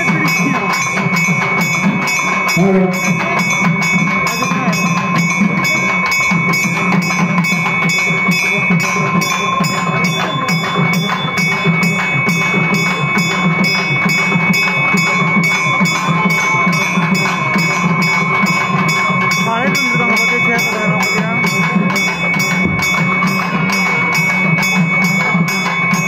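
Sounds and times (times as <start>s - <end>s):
bells ringing: 0.0s - 26.0s
drums beating: 0.0s - 26.0s.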